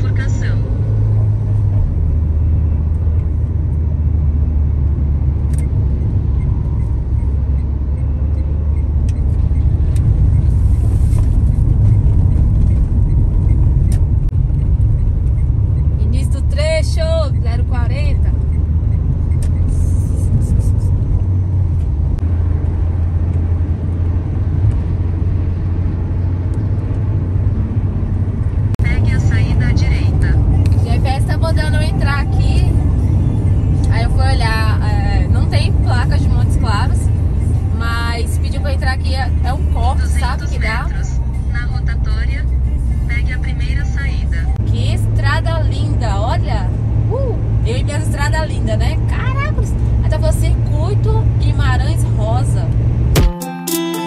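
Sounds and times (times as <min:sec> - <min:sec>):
car driving at highway speed: 0:00.0 - 0:53.2
tyre noise on road: 0:00.6 - 0:16.0.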